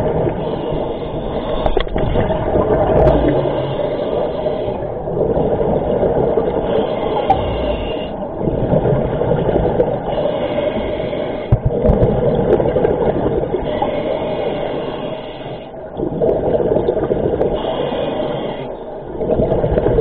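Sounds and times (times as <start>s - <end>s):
diver breathing through regulator: 0.0s - 2.3s, 3.0s - 11.9s, 13.4s - 19.0s
exhaled air bubbling: 0.0s - 20.0s.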